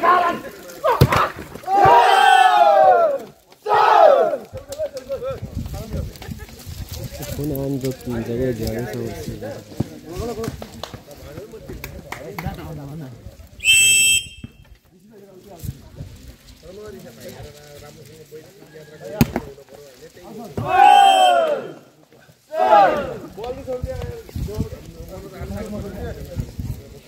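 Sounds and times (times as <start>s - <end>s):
people shouting: 0.0s - 4.5s, 20.6s - 21.9s, 22.5s - 23.3s
people chattering: 0.0s - 27.0s
referee's whistle: 13.6s - 14.7s, 20.8s - 21.5s.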